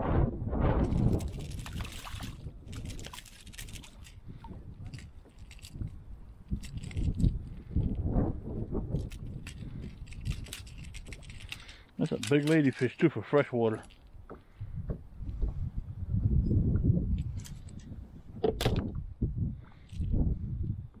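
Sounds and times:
wind rumble on microphone: 0.0 - 11.8, 14.0 - 21.0
fish splashing: 1.0 - 4.1.

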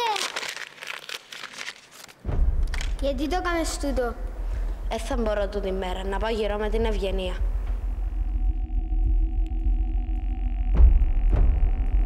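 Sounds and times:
rustling and crinkling: 0.0 - 3.0.

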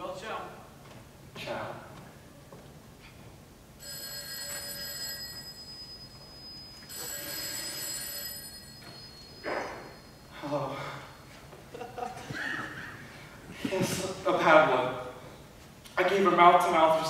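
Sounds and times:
telephone ringing: 3.8 - 10.4.

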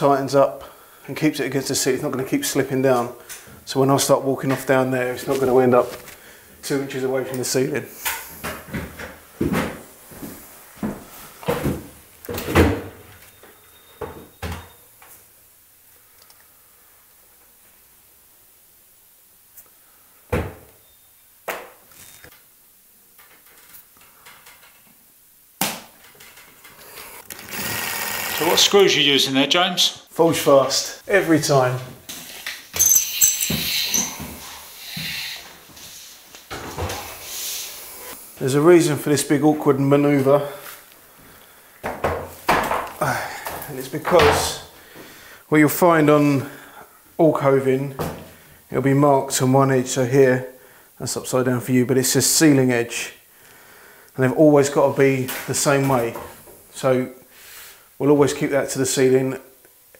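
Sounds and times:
plastic wrapping squeaking and rubbing: 32.8 - 35.4.

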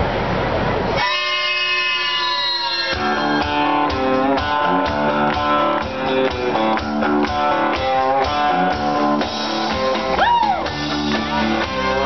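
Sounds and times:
sustained chord ringing: 1.0 - 6.1
instrumental backing track: 1.0 - 12.0.

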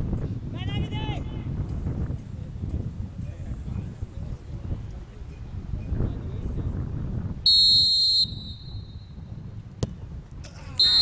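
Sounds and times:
referee's whistle blast: 7.5 - 9.1, 10.8 - 11.0
football kick thud: 9.7 - 10.1.

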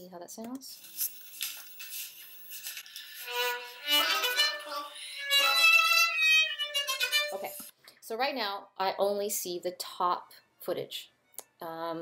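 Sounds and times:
violin melody: 3.0 - 7.7.

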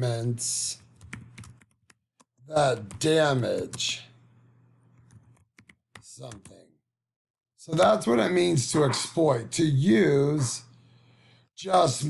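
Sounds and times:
faint typing on computer keyboard: 0.7 - 3.9, 4.9 - 6.6.

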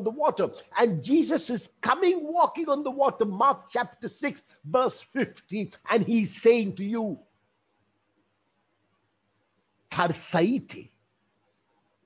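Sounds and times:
man's voice: 0.0 - 7.2, 9.9 - 11.0.

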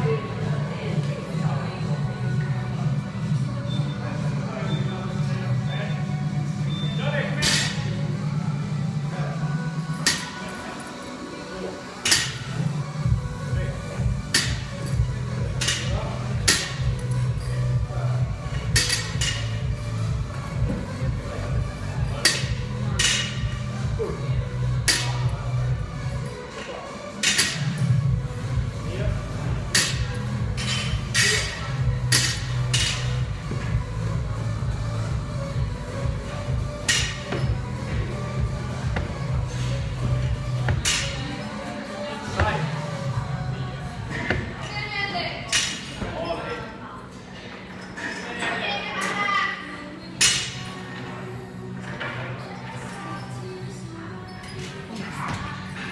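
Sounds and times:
gym music with bass line: 12.0 - 26.3, 27.2 - 41.5.

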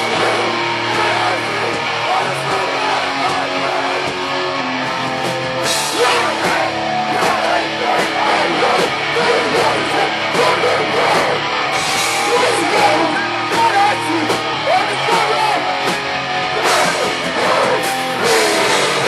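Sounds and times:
hardcore punk band playing: 0.0 - 19.0.

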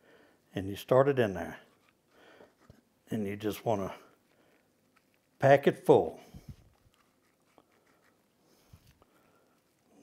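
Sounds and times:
person speaking: 0.5 - 1.9, 3.0 - 4.3, 5.2 - 9.0
soft handling sounds: 1.3 - 10.0.

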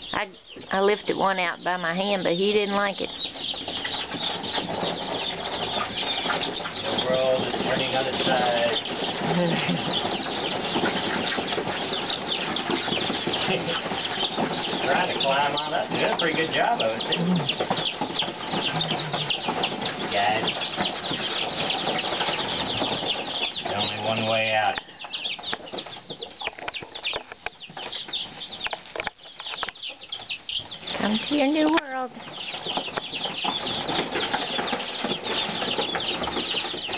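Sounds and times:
baby chicks peeping: 0.0 - 36.9
chicks scratching in cardboard box: 0.0 - 36.9.

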